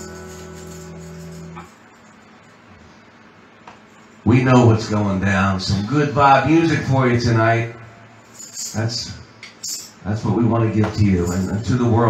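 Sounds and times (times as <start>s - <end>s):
electric guitar chord ringing: 0.0s - 2.3s.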